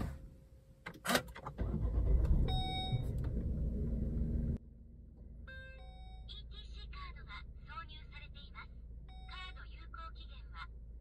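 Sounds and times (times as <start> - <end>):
car engine starting and running: 0.0 - 9.3.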